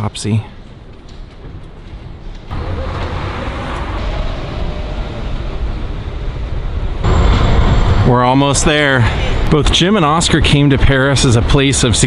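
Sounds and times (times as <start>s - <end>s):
road rumble: 0.0s - 12.0s
passing cars: 2.2s - 9.5s.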